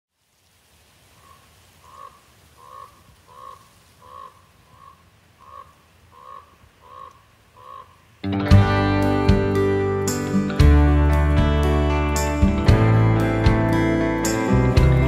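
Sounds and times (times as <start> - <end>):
crow calling harshly: 1.2 - 8.0.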